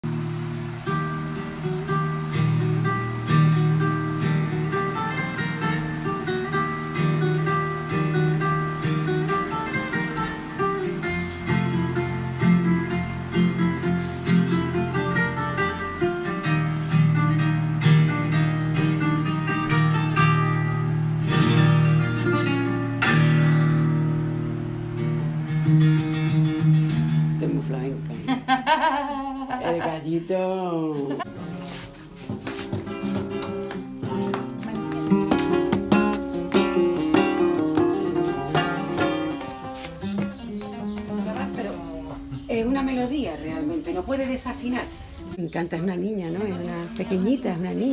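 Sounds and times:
flamenco acoustic guitar: 0.0 - 47.9.

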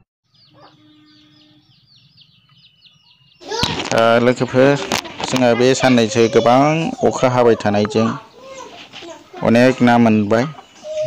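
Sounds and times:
bird chirping: 0.2 - 11.0.

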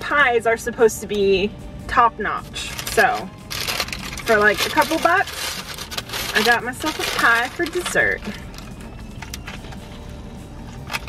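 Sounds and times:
crunching and chewing pastry: 3.4 - 11.0.

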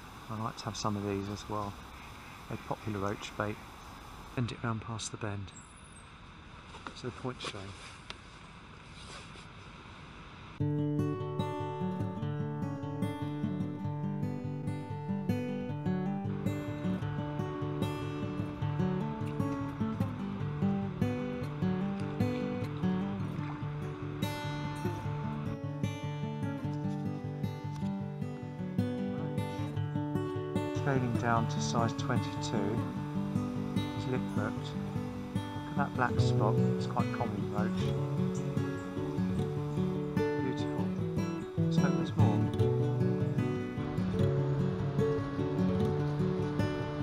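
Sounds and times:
faint background hiss: 0.0 - 47.0
acoustic guitar music: 10.6 - 47.0.

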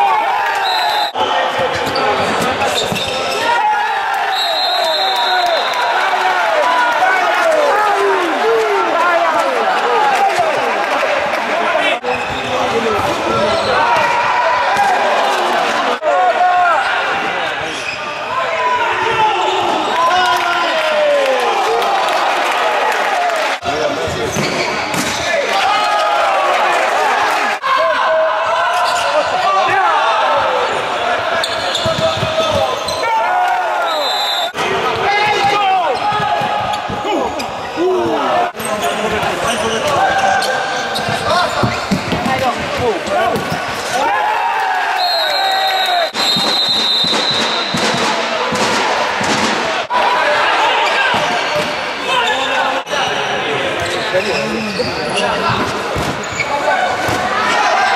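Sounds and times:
players shouting: 0.0 - 23.7, 25.0 - 57.9
shoes squeaking on court: 1.6 - 3.5, 31.4 - 33.0, 38.6 - 43.9, 51.1 - 56.7.

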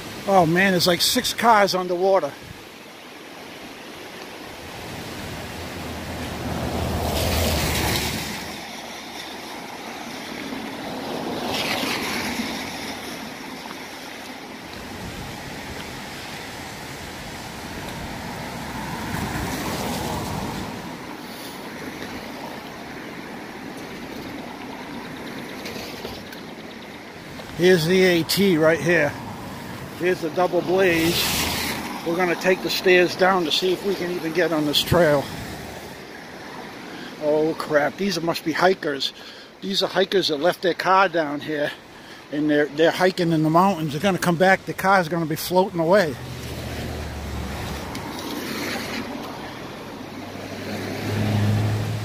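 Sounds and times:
river rushing: 0.0 - 52.0.

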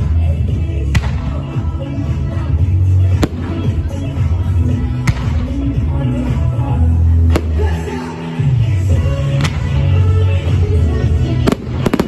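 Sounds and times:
music with low bass line: 0.0 - 12.0
fireworks bangs: 3.1 - 4.3, 11.4 - 12.0.

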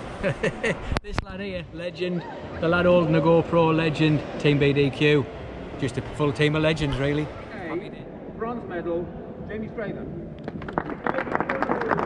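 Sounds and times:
small crowd clapping: 10.4 - 12.0.

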